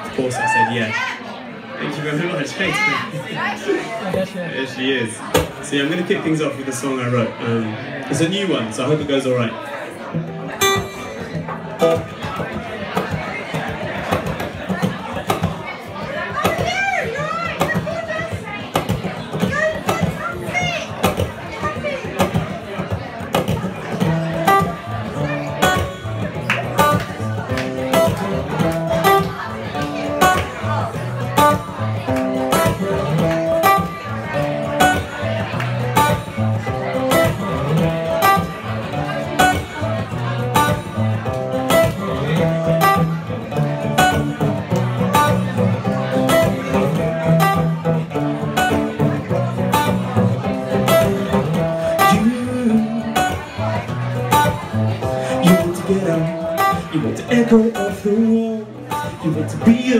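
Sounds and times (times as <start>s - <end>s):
acoustic guitar picked notes: 5.2s - 59.9s
sharp guitar strikes: 10.2s - 15.6s, 22.0s - 59.9s.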